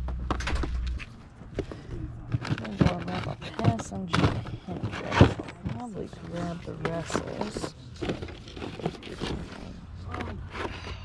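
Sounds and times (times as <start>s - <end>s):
packaging rustling and bumping: 1.6s - 11.0s.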